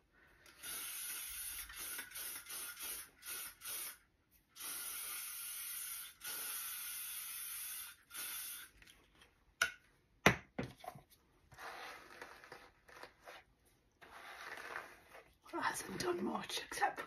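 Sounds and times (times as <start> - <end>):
aerosol spray hissing: 0.6 - 4.0, 4.6 - 8.7.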